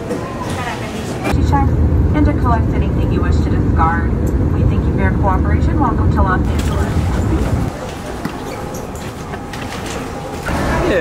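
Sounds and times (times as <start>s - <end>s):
people talking: 0.0s - 11.0s
loud low rumble: 1.3s - 7.8s.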